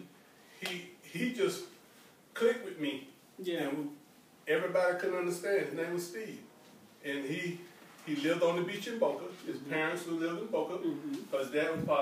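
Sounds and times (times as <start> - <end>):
person speaking: 7.0 - 12.0.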